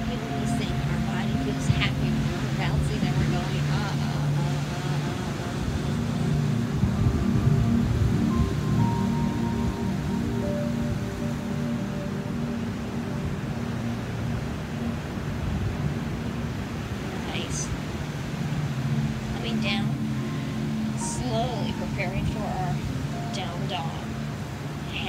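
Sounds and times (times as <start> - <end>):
slow ambient music: 0.0 - 25.0
surf: 0.0 - 25.0.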